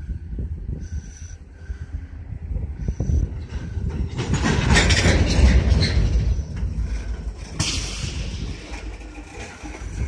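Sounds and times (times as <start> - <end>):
freight train rolling past: 2.0 - 10.0.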